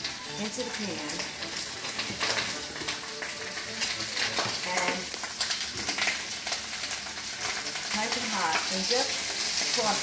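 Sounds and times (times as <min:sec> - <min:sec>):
greens sizzling in hot oil: 0:00.0 - 0:10.0.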